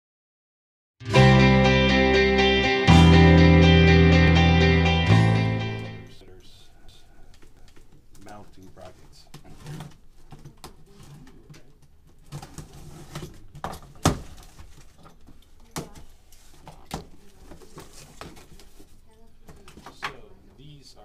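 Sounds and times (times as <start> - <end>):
packaging rustling and scraping: 8.8 - 11.4, 12.1 - 15.2, 16.4 - 19.0.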